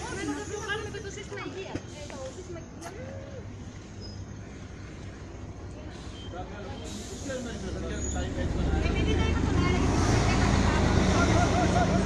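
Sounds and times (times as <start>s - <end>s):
people talking: 5.7s - 12.0s
bus engine running: 6.8s - 12.0s.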